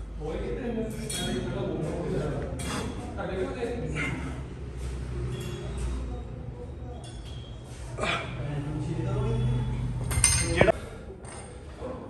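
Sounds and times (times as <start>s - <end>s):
metal weight plates clinking: 10.1s - 10.7s.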